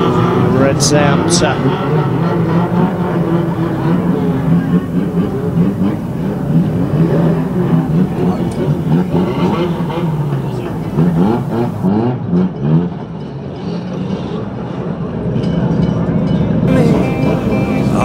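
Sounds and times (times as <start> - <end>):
race car engines revving: 0.0 - 15.4, 16.6 - 18.0.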